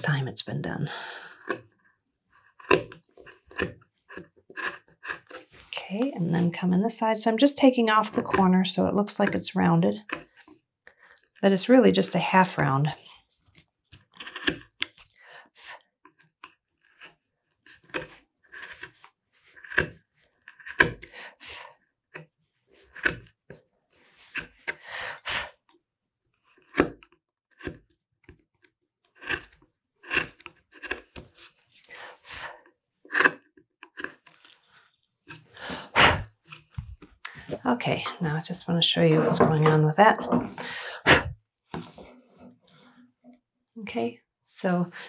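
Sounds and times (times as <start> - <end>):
carving gouge slicing wood: 1.3 - 5.6, 10.0 - 10.5, 14.0 - 15.0, 16.1 - 21.1, 22.8 - 23.4, 24.3 - 24.8, 26.5 - 27.0, 27.6 - 27.9, 29.2 - 31.5, 33.1 - 34.4.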